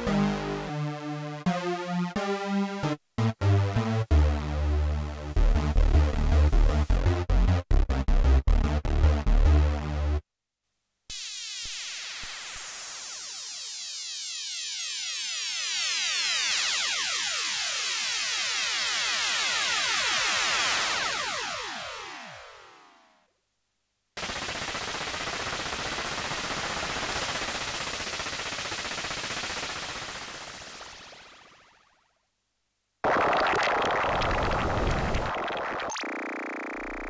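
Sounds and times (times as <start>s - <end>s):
harsh noisy synthesiser tone: 33.0s - 37.0s
synthesiser tone sweeping downward: 33.0s - 37.0s.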